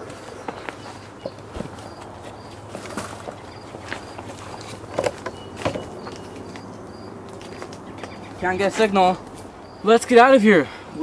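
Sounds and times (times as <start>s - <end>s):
footsteps through dry brush: 0.0s - 9.6s.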